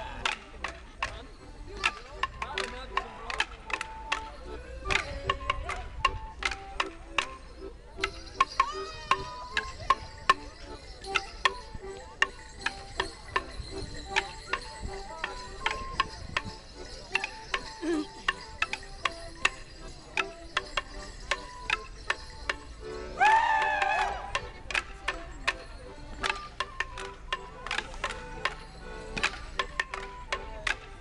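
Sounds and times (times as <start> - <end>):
folk tune: 0.0 - 31.0
wooden sticks clashing: 0.1 - 31.0.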